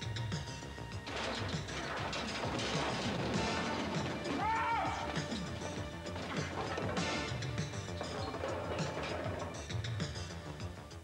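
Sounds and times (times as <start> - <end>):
objects crashing and banging: 0.8 - 10.6.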